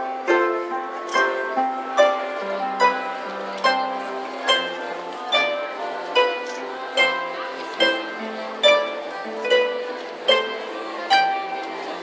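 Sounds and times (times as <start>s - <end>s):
plucked harps playing: 0.0s - 12.0s.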